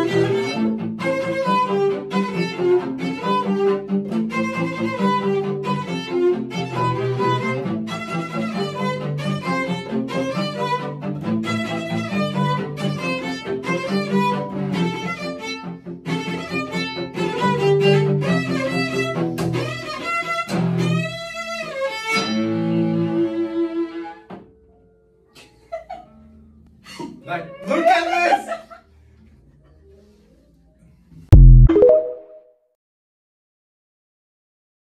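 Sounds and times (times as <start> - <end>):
cello duet: 0.0 - 24.6.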